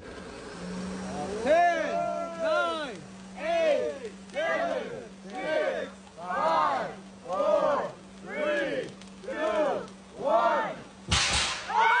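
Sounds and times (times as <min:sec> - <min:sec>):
voices calling out together: 0:01.2 - 0:10.9
smoke cannon bang and hiss: 0:11.0 - 0:12.0
high-pitched shrieks and cheers: 0:11.6 - 0:12.0.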